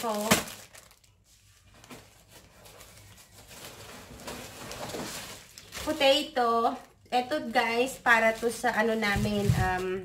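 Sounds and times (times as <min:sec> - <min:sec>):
hand rummaging in plastic wrapping: 0:00.0 - 0:10.0
shopping bag rustling: 0:00.0 - 0:10.0.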